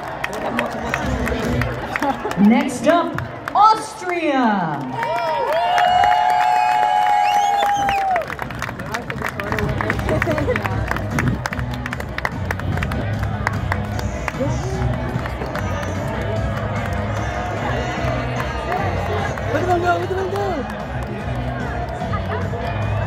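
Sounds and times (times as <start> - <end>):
crowd clapping and cheering: 0.0 - 23.0
music over loudspeakers: 9.5 - 23.0.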